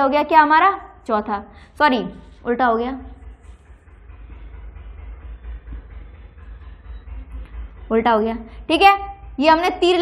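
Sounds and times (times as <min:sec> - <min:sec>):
low background rumble: 0:00.0 - 0:10.0
marker scratching on whiteboard: 0:03.1 - 0:04.0.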